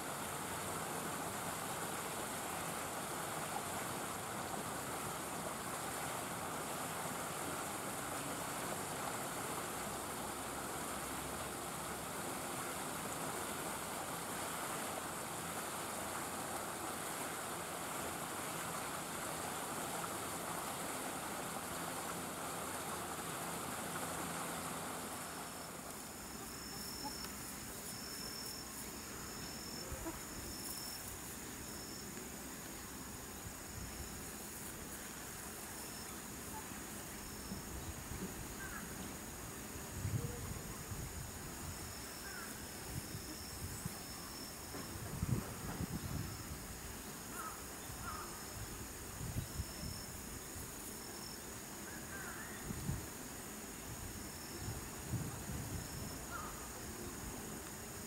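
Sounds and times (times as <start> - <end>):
rushing outdoor noise: 0.0 - 58.0
insect chirping in high pulses: 20.2 - 40.4, 41.0 - 58.0.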